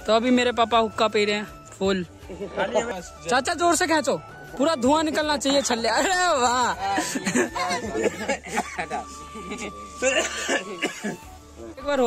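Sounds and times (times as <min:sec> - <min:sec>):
man coughing: 0:07.0 - 0:09.0, 0:10.0 - 0:11.2.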